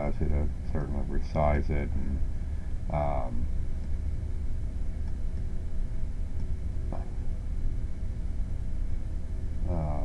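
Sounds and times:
low hum of background noise: 0:00.0 - 0:10.0.

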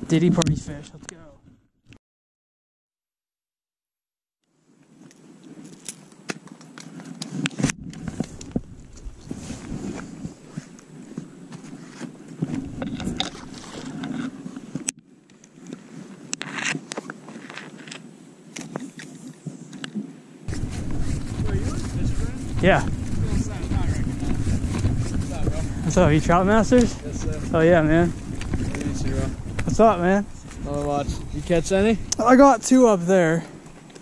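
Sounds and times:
fishing gear rustling and clicking: 0:04.9 - 0:31.5
footsteps: 0:05.0 - 0:14.9, 0:20.5 - 0:32.3.

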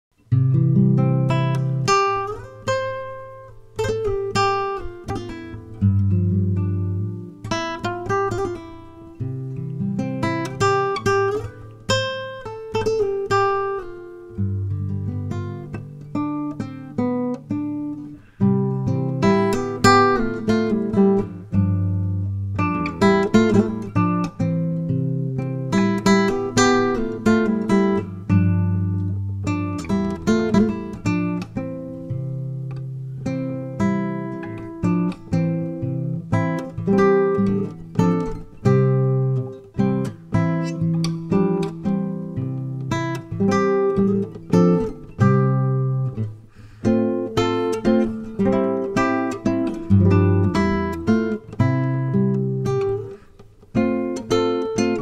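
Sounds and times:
acoustic guitar chords strummed: 0:00.2 - 0:55.0.

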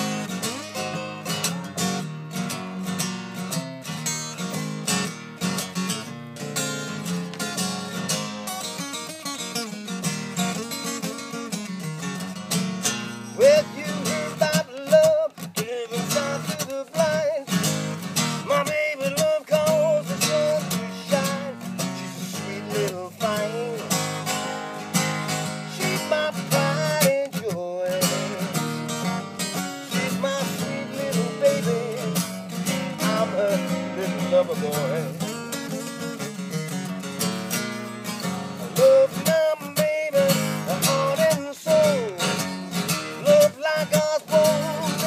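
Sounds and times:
acoustic guitar playing blues: 0:00.0 - 0:45.0.

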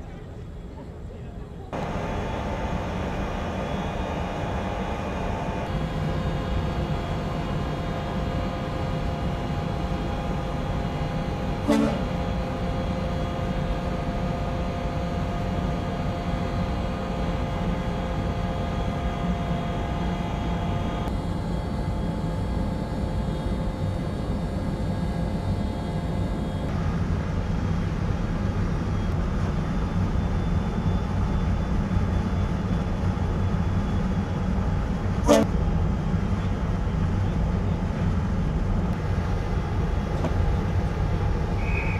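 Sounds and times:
machine hum: 0:01.7 - 0:41.7.

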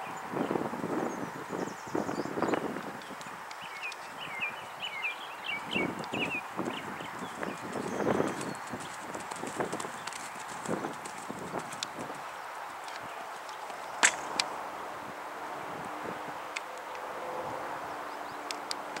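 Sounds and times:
pony hoofbeats on sand: 0:06.2 - 0:13.9.

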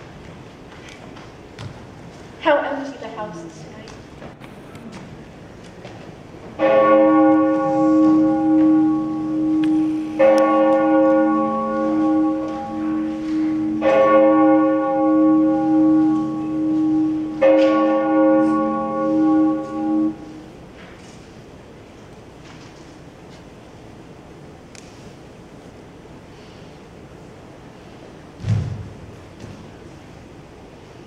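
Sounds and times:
large bell tolling: 0:06.6 - 0:20.5.

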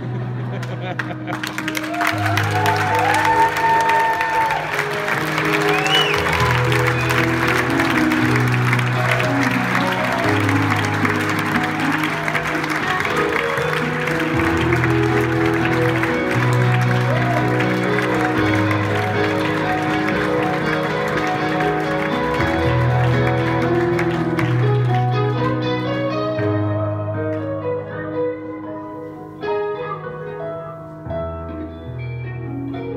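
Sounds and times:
audience applauding: 0:00.0 - 0:26.6
low keyboard chords: 0:00.0 - 0:32.9.

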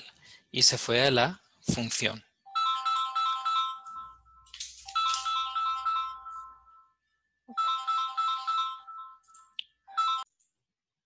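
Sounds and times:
electronic phone ringtone: 0:02.5 - 0:10.3.

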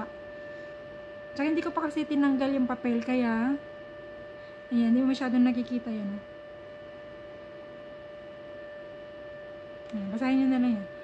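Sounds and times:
steady pitched hum: 0:00.0 - 0:11.0.

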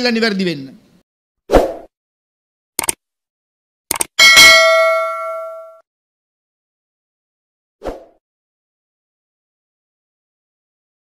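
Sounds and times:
bell ding: 0:04.2 - 0:05.8.

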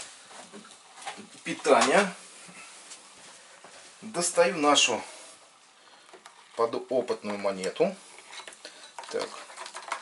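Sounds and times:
person speaking: 0:01.4 - 0:02.2, 0:04.0 - 0:05.3, 0:06.5 - 0:08.1, 0:09.0 - 0:09.5.

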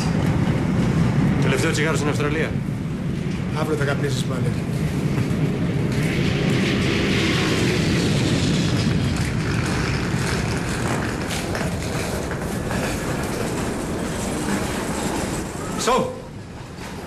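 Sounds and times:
loud rumbling and rattling: 0:00.0 - 0:17.0.

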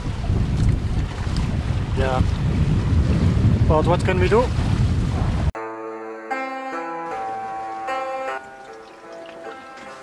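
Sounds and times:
wind buffeting microphone: 0:00.0 - 0:05.6
faint sea noise: 0:06.3 - 0:10.0.

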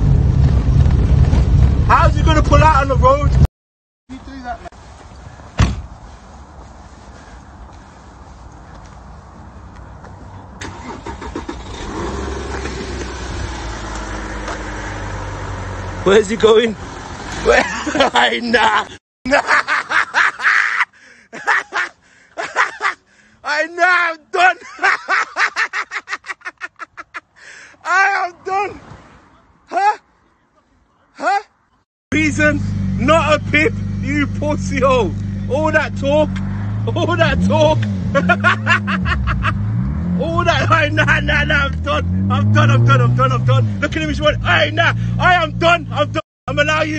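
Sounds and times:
sharp knock: 0:05.6 - 0:05.9
car engine drone: 0:10.3 - 0:18.2, 0:32.1 - 0:46.9
man laughing: 0:17.4 - 0:23.1, 0:24.4 - 0:27.8, 0:29.7 - 0:30.0, 0:36.9 - 0:41.3.

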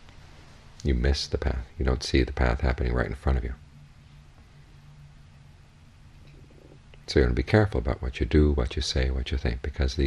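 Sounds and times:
low hum with hiss: 0:00.0 - 0:10.0.

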